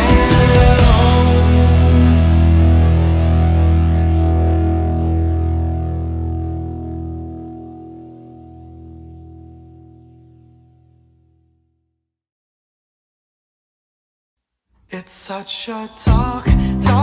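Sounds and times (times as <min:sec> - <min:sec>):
distorted electric guitar chord ringing: 0:00.0 - 0:11.6.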